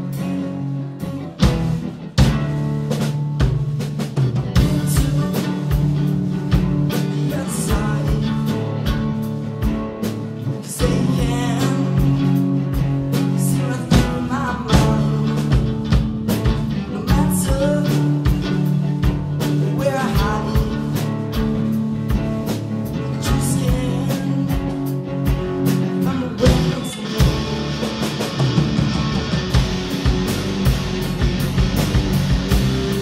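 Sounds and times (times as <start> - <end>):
bass guitar: 0.0 - 33.0
electric guitars: 0.0 - 33.0
drum kit hits: 1.4 - 10.2, 24.7 - 33.0.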